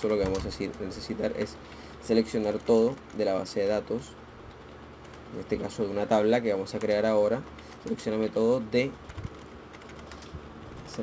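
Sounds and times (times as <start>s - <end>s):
computer keyboard keystrokes: 0.0s - 3.3s, 4.5s - 5.8s, 6.6s - 8.3s, 9.0s - 11.0s.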